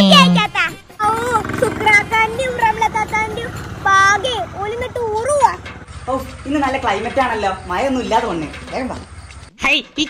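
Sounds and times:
child talking loudly: 0.0 - 5.6.

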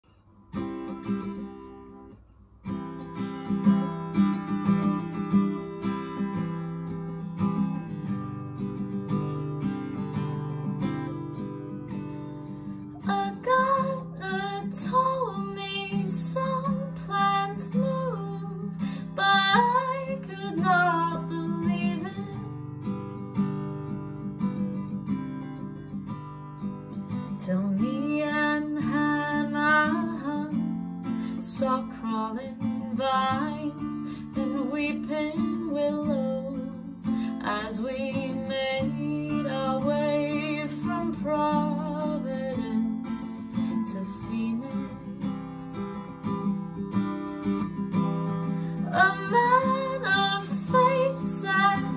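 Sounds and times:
acoustic guitar playing: 0.0 - 51.9
woman singing: 12.9 - 22.6, 27.1 - 46.0, 48.7 - 51.9.

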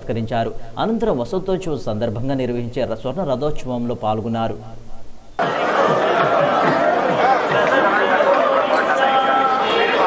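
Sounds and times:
crowd babble: 5.4 - 10.0.

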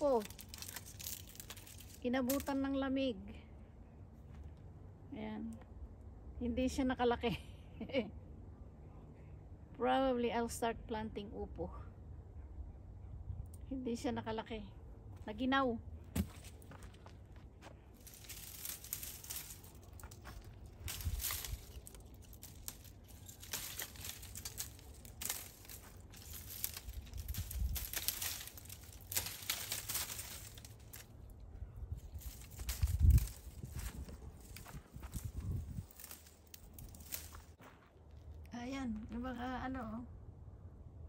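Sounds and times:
pruning shears clicking: 0.0 - 2.6, 18.0 - 31.2
dry leaves and stems crackling: 0.0 - 3.2, 16.2 - 39.8.

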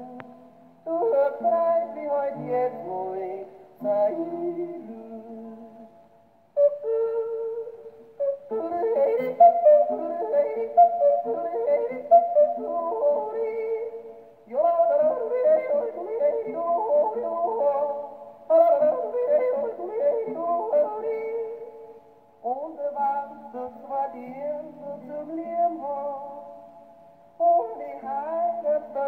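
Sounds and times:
yodel song on gramophone record: 0.0 - 29.0.

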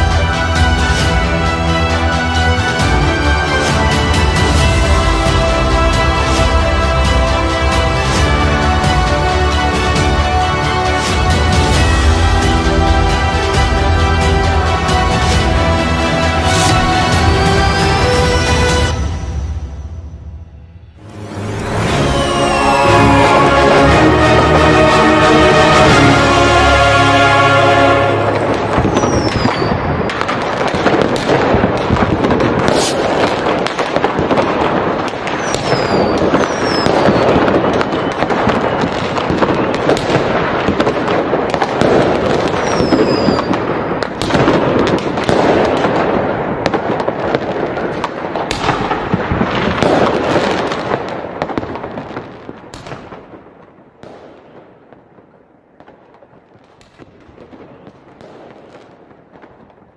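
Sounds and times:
fireworks crackling and popping: 0.0 - 20.2, 21.0 - 59.9
fireworks whistling: 13.3 - 26.6, 27.6 - 53.1.

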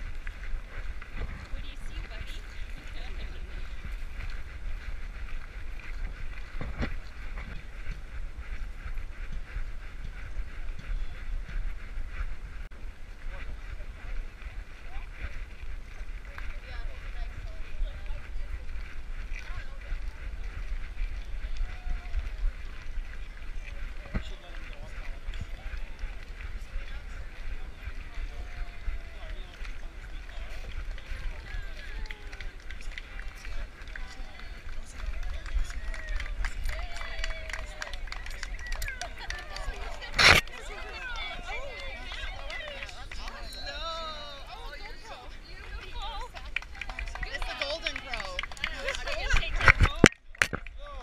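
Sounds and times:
people talking: 0.2 - 4.4, 13.2 - 51.0
indistinct voices: 13.2 - 51.0.

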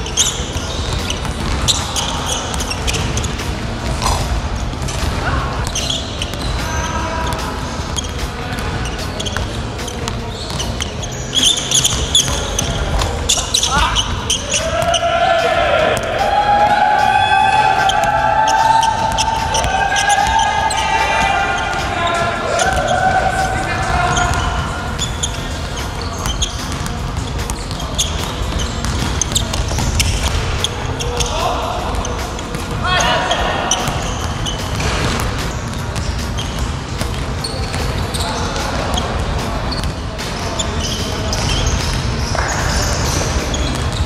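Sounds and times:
basketball bouncing on hardwood floor: 26.2 - 30.5.

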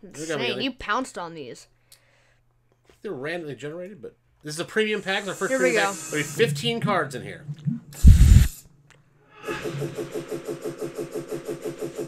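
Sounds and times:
rapid pulsing whir: 8.0 - 8.6.

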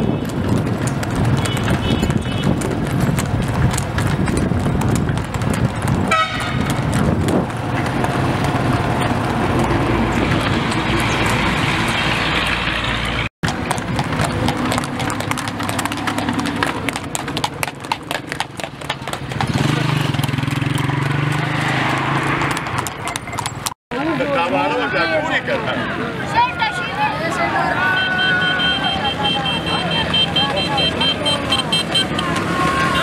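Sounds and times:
horse hooves clip-clopping on asphalt: 0.0 - 23.8, 29.4 - 33.0
motor vehicles humming: 0.0 - 33.0.

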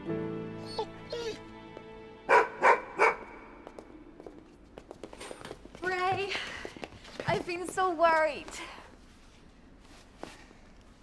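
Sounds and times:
soft background music: 0.0 - 4.8
dog barking: 2.3 - 3.5.

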